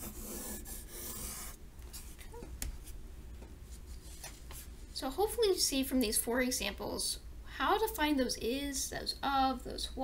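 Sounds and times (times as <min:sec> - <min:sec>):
pencil scratching on paper: 0:00.0 - 0:01.6
low steady hum: 0:00.0 - 0:10.0.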